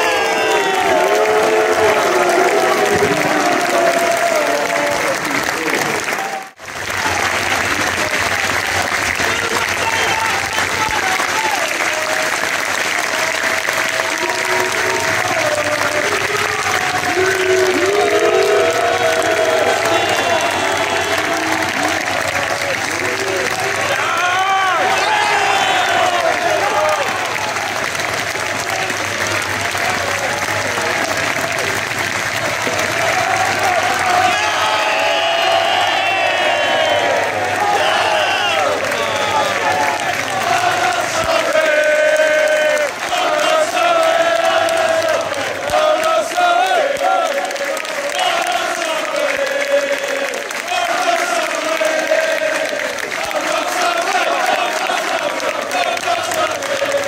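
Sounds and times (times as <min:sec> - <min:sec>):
crowd clapping: 0:00.0 - 0:57.0.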